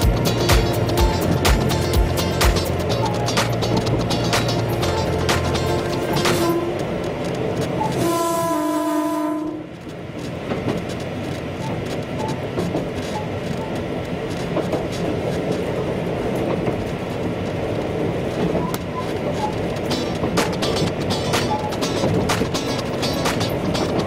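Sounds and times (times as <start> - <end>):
rail clicks: 0.0 - 24.0
train rumbling on track: 0.0 - 24.0
train horn: 6.2 - 6.9, 7.8 - 9.8.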